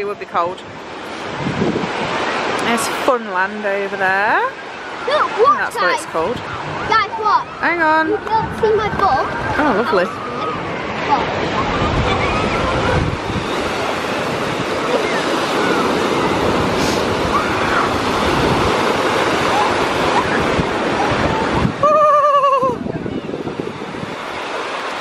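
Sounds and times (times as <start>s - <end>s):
waves breaking on beach: 0.0s - 25.0s
wind buffeting microphone: 0.0s - 25.0s
wavering high voice: 21.8s - 22.9s.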